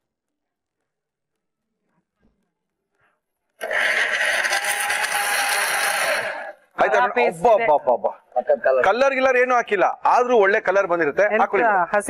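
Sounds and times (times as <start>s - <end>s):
electric mixer grinder running: 3.6s - 6.6s.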